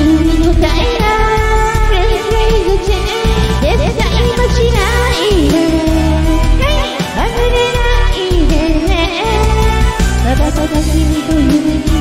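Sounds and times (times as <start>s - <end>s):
rock ballad backing track: 0.0s - 12.0s.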